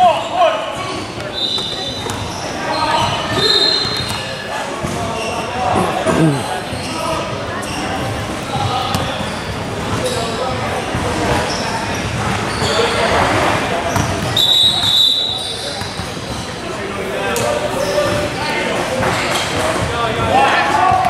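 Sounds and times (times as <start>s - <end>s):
indistinct voices echoing: 0.0s - 12.1s
basketball bouncing on gym floor: 8.6s - 9.2s.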